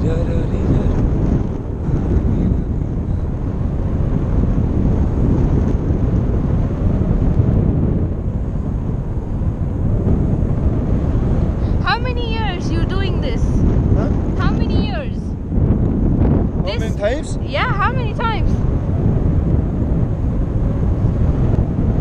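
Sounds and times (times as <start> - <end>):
wind rushing over microphone: 0.0 - 22.0
person's voice: 11.8 - 15.3, 16.6 - 18.6.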